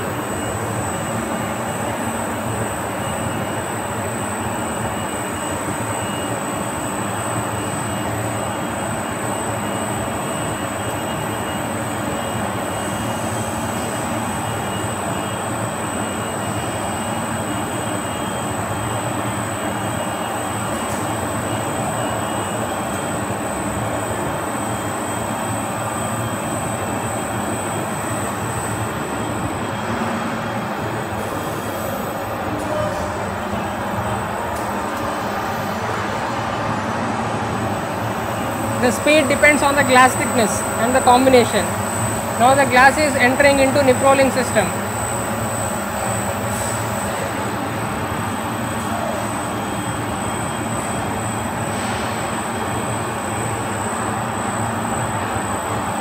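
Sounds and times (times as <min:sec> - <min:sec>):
high-pitched whine: 0:00.0 - 0:56.0
steady machinery noise: 0:00.0 - 0:56.0.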